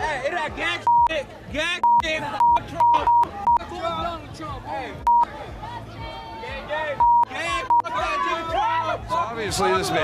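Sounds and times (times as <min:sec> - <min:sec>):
censor bleeps: 0:00.9 - 0:01.1, 0:01.8 - 0:03.6, 0:05.0 - 0:05.3, 0:07.0 - 0:07.9
protesters shouting: 0:04.8 - 0:10.0.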